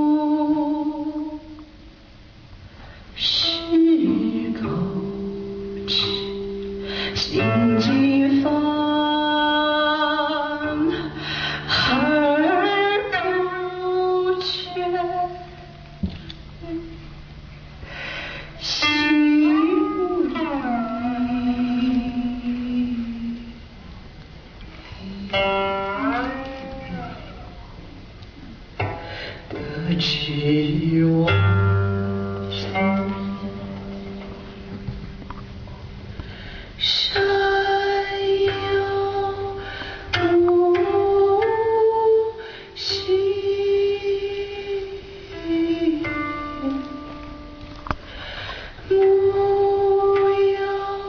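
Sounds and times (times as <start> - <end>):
person singing: 3.2 - 15.6, 18.5 - 23.6, 24.9 - 27.8, 29.4 - 34.2, 36.8 - 47.8, 48.8 - 51.0
soft inhale of breath: 6.8 - 7.2, 11.2 - 11.8, 17.8 - 18.6, 29.0 - 29.5, 36.1 - 36.8, 39.6 - 40.1, 48.0 - 48.9.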